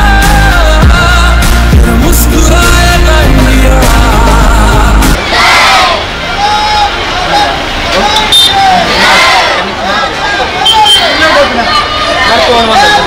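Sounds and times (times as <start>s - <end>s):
crowd shouting together: 5.2s - 13.0s.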